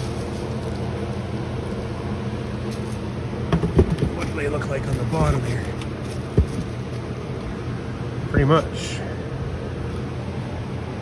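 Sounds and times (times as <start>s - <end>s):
steady low hum: 0.0s - 11.0s
dull knock: 3.5s - 4.2s.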